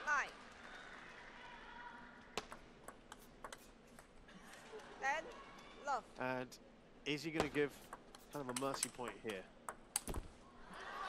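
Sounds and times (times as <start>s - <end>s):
table tennis ball bouncing: 2.4s - 4.2s, 7.4s - 10.4s.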